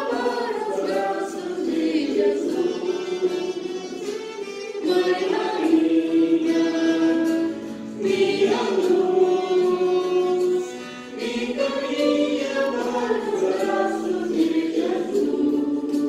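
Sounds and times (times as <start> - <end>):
choir singing a hymn: 0.0 - 16.0.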